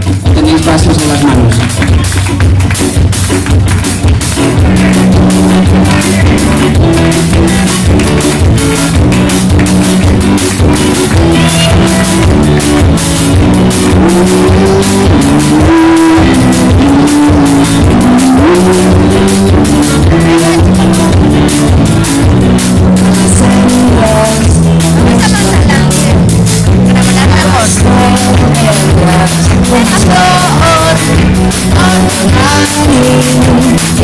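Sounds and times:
hand claps: 0.0s - 34.0s
live pop-rock band playing: 0.0s - 34.0s.

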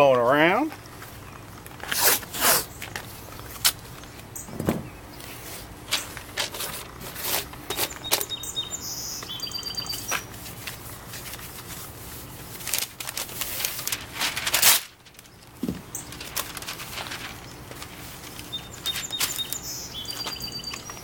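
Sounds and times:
tape pulled and torn: 1.8s - 3.0s, 12.6s - 15.3s
high squeaky chirps: 7.7s - 10.2s, 18.5s - 21.0s.

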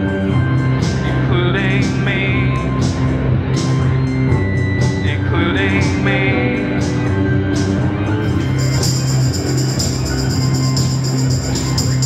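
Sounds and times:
bass guitar line: 0.0s - 12.0s
drum machine beat: 8.3s - 12.0s.

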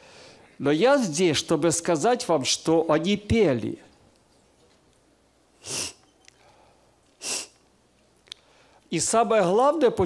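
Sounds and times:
man sniffing: 5.6s - 6.0s, 7.2s - 7.6s.

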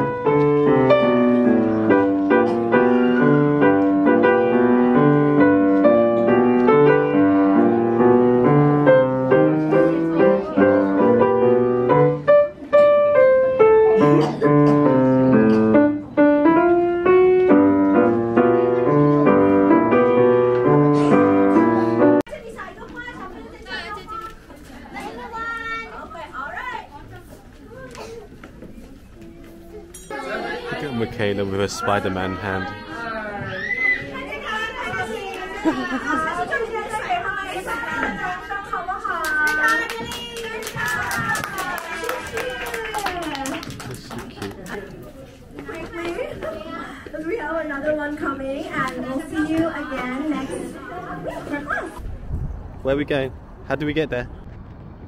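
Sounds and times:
chatter of many voices: 0.0s - 15.8s, 20.6s - 52.3s
piano melody: 0.0s - 22.3s.

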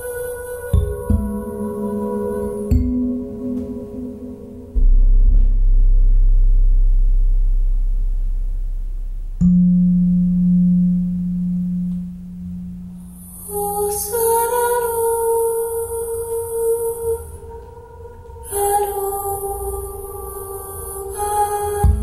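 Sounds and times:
ambient music over speakers: 0.0s - 22.0s
higher held tone: 0.7s - 20.5s
deep held bass note: 2.4s - 13.6s.

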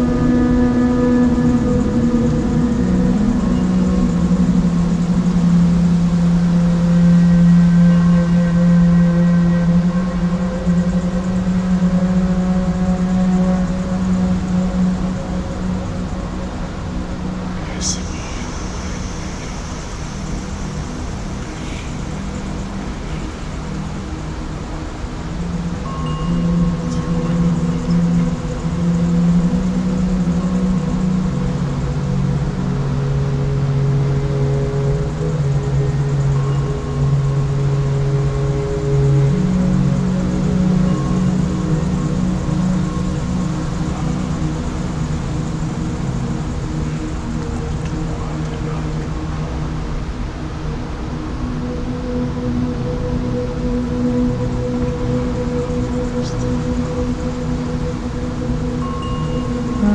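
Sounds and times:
ambient drone music: 0.0s - 59.9s
rushing background noise: 0.0s - 59.9s.

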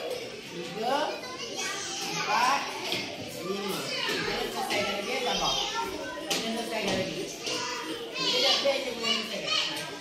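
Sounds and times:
classroom background noise: 0.0s - 10.0s
young children's voices: 0.0s - 10.0s.

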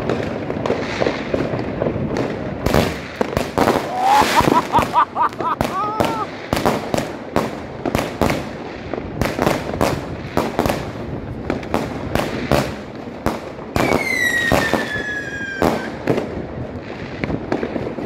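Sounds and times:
fireworks banging: 0.0s - 18.0s
firework whistle: 3.8s - 5.0s, 13.8s - 16.0s.

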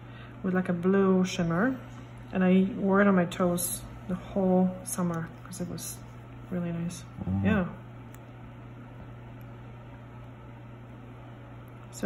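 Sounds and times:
low room hum with hiss: 0.0s - 12.0s.

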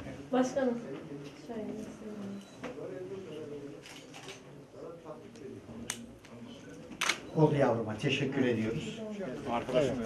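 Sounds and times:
low indistinct voices: 0.0s - 10.0s.

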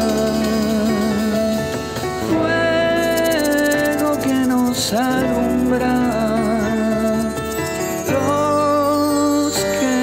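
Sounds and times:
live band playing: 0.0s - 10.0s
person singing: 0.0s - 10.0s.

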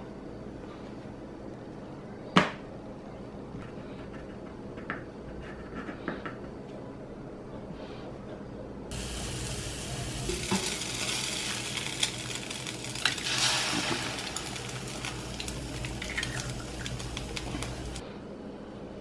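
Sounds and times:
food sizzling in a frying pan: 8.9s - 18.0s.

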